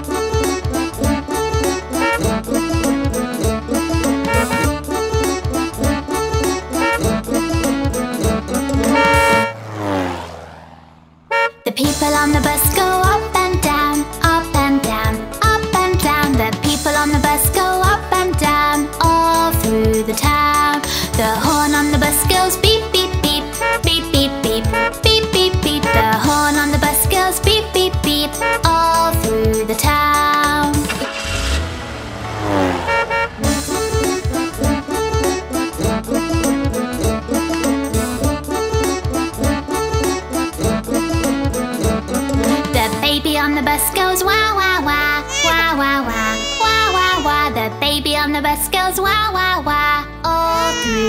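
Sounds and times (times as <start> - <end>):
bouncy children's song music: 0.0 - 9.5, 11.6 - 31.2, 33.4 - 51.0
cartoon bus rush and hum: 0.0 - 51.0
short horn toot: 8.8 - 9.6, 11.3 - 11.7, 32.6 - 34.4.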